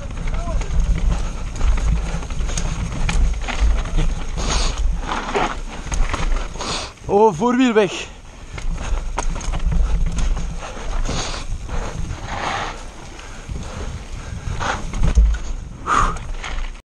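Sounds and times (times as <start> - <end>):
wind rumble on microphone: 0.0 - 7.1, 8.1 - 16.8
bike rattling: 0.0 - 16.8.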